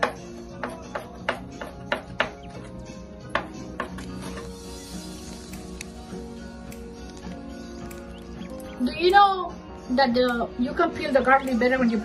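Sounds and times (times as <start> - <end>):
knife chopping on cutting board: 0.0 - 2.5
background music: 0.0 - 12.0.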